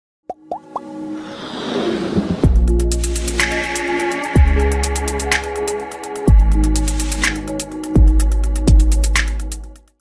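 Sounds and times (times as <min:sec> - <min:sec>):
music: 0:00.3 - 0:10.0
whoosh: 0:01.2 - 0:02.9.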